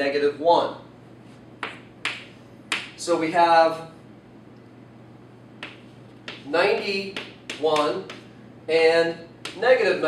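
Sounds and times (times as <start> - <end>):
faint room hum: 0.0 - 10.0
chalk tap on blackboard: 1.6 - 3.0, 5.6 - 8.3, 9.4 - 9.6.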